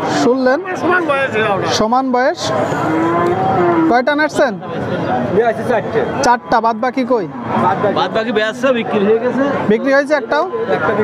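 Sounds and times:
crowd hubbub: 0.0s - 11.0s
cow mooing: 2.4s - 4.4s.

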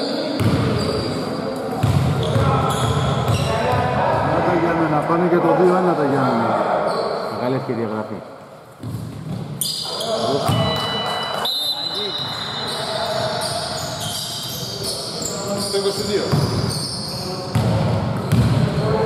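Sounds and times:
shoe squeaks: 0.0s - 1.4s, 2.2s - 3.6s, 6.8s - 7.5s, 8.9s - 17.6s.

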